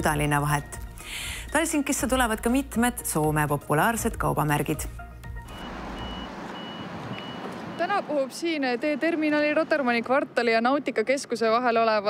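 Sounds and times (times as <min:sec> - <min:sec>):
traffic noise: 0:05.2 - 0:11.7
vehicle reversing alarm beeping: 0:05.4 - 0:08.6
wind: 0:05.5 - 0:12.0.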